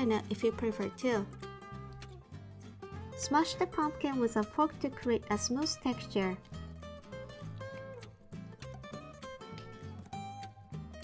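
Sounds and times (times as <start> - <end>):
plucked acoustic guitar melody: 0.0 - 11.0.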